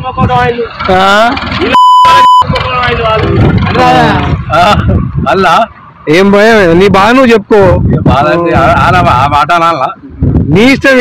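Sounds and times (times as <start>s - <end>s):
high-pitched censor bleep: 1.7s - 2.5s.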